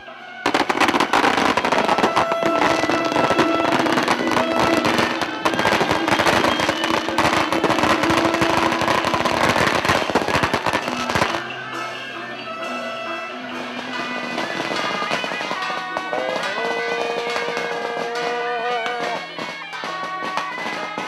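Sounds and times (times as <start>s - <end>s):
festival music: 0.0s - 21.0s
firecrackers crackling: 0.0s - 21.0s.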